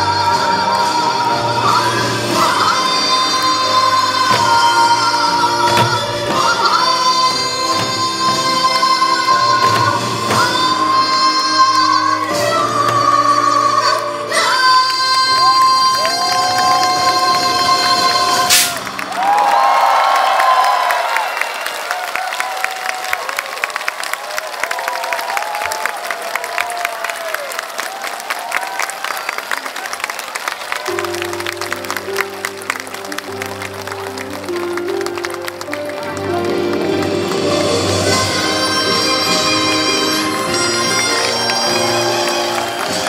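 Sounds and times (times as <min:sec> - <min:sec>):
audience applauding and cheering: 0:00.0 - 0:43.0.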